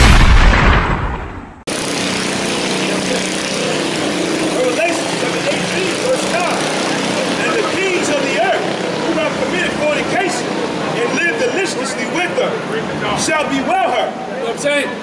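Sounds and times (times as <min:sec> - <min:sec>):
hum of vehicle engines: 0:01.6 - 0:15.0.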